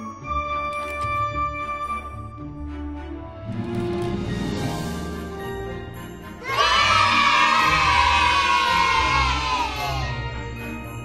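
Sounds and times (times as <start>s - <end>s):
background music: 0.0s - 11.0s
children cheering: 6.4s - 10.4s.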